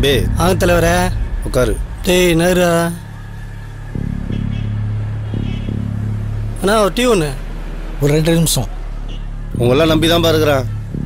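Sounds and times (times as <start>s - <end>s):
man speaking: 0.0s - 3.1s, 9.6s - 10.7s
steady low hum: 0.0s - 6.6s.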